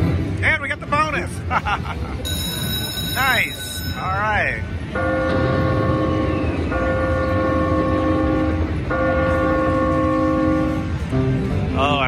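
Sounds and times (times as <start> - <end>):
low background din: 0.0 - 12.0
slot machine electronic chord: 2.2 - 6.0.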